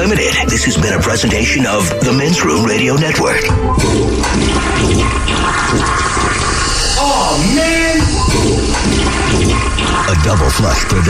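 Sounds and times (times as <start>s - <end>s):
music: 0.0s - 11.0s
toilet flushing: 2.6s - 11.0s.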